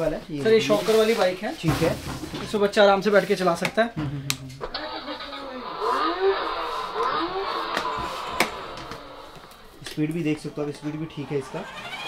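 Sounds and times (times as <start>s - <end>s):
tinny recorded engine sound: 4.7s - 9.8s, 11.2s - 12.0s.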